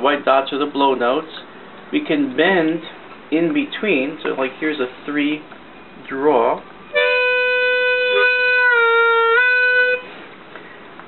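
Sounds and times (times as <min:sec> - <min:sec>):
harmonica note bending: 0:06.9 - 0:10.3.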